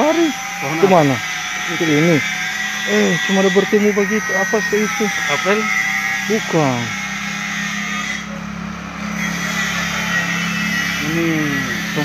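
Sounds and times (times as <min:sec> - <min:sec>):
engine humming: 0:00.0 - 0:12.0.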